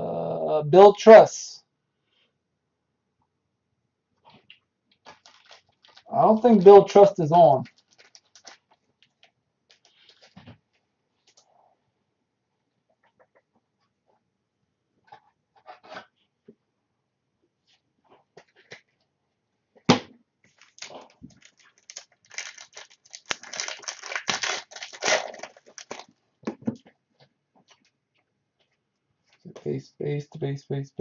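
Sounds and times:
wrapper crinkling and tearing: 4.9s - 10.4s, 20.5s - 26.2s.

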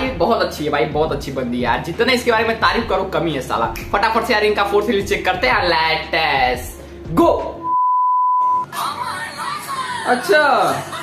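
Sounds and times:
censor bleep tone: 7.6s - 8.7s.

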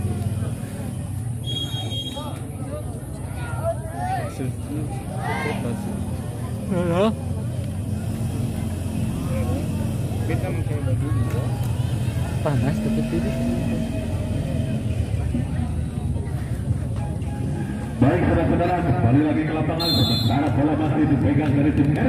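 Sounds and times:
spectators chattering: 0.0s - 22.0s.

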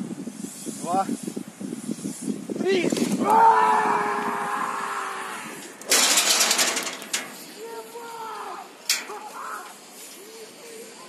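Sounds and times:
wind noise rush: 0.0s - 10.0s
man screaming: 3.2s - 5.6s, 7.6s - 9.7s
man shouting: 7.6s - 9.7s.

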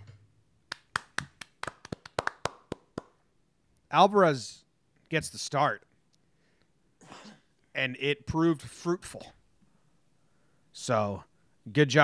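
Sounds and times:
people clapping hands: 0.7s - 3.2s.

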